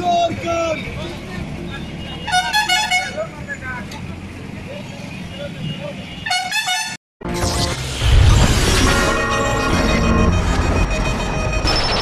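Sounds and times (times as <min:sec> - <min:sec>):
traffic running: 0:00.0 - 0:12.0
vehicle horn honking: 0:05.7 - 0:07.0.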